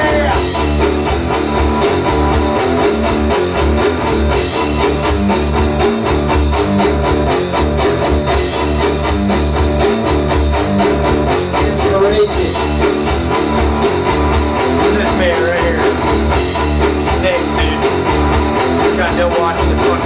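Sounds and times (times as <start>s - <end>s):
rock music with electric guitar: 0.0s - 20.0s.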